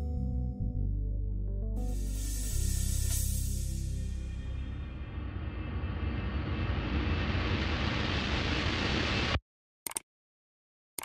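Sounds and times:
deep rumble: 0.7 - 9.4
rising whoosh: 1.9 - 9.4.

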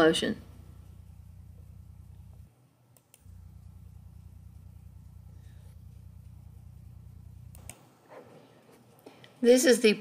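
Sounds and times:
faint low electrical hum: 0.0 - 10.0.

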